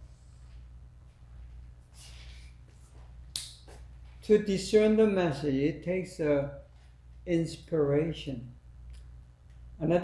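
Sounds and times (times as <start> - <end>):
low room hum: 0.0 - 10.0
sharp click: 3.3 - 3.7.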